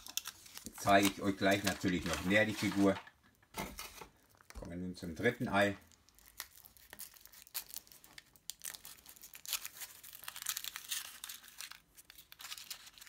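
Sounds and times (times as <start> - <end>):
foil wrapper crinkling: 0.0 - 3.0, 5.6 - 13.0.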